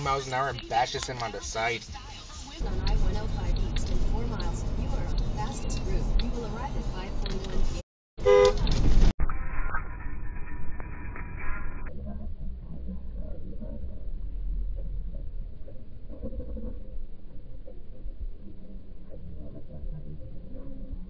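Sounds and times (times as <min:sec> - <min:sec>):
road and engine noise: 0:00.0 - 0:09.2
car horn: 0:08.2 - 0:08.7.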